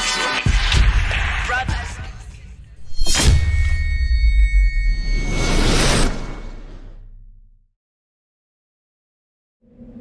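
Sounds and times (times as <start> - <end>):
high ringing shimmer: 3.0 - 5.9.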